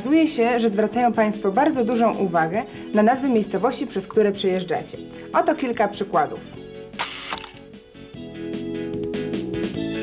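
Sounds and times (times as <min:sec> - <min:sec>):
background music with held notes: 0:00.0 - 0:10.0
camera shutter clicking whir: 0:07.0 - 0:07.7.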